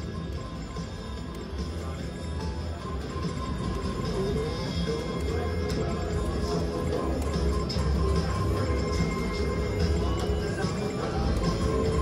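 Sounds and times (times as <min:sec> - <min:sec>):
electronic machine tones: 0:00.0 - 0:12.0
music: 0:00.0 - 0:12.0.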